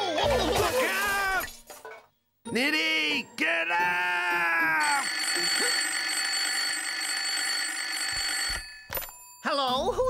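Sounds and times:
telephone bell ringing: 0:04.8 - 0:09.4.

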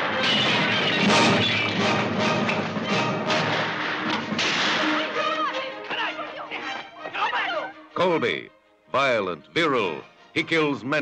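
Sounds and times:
orchestral western music: 0:00.0 - 0:11.0
gunshot crack: 0:03.3 - 0:05.1.

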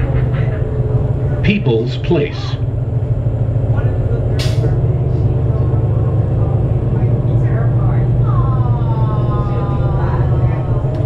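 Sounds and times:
bus diesel engine rumble: 0:00.0 - 0:11.0.

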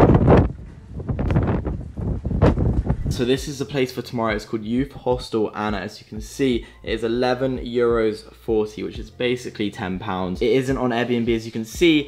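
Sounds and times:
wind buffeting microphone: 0:00.0 - 0:03.6.

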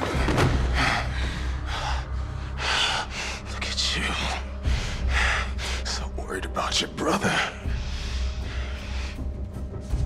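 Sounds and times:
heavy ragged breathing: 0:00.0 - 0:10.0.

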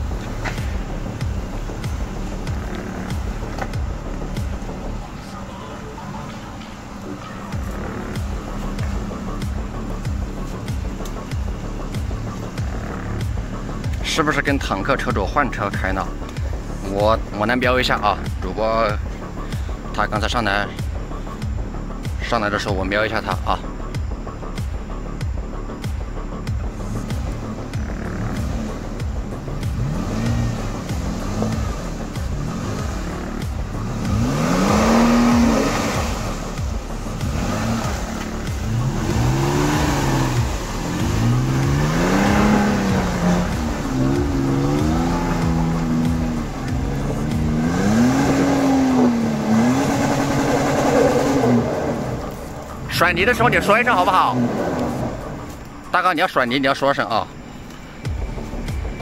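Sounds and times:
car engine revving: 0:00.0 - 0:59.0.

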